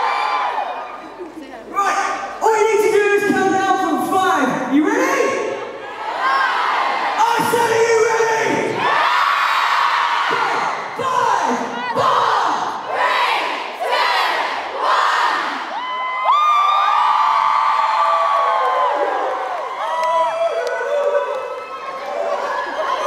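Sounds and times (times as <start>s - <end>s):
audience screaming and cheering: 0.0s - 3.6s, 4.8s - 23.0s.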